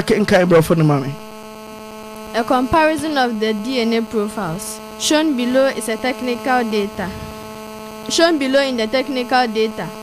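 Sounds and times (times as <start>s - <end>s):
electrical mains hum: 0.0s - 10.0s
person speaking: 2.3s - 10.0s.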